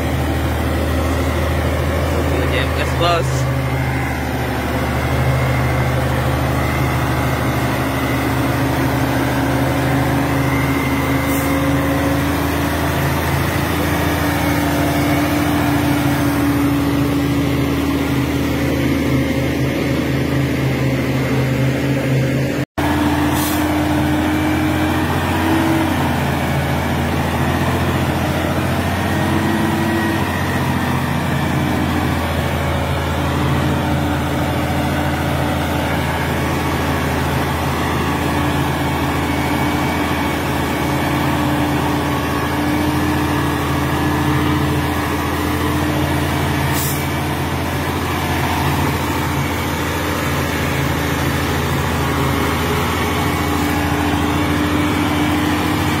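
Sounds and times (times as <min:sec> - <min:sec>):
diesel truck engine running: 0:00.0 - 0:56.0.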